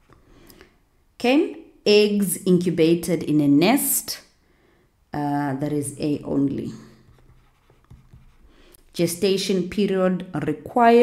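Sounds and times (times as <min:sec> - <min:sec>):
stylus scratching on tablet: 0:07.0 - 0:08.6.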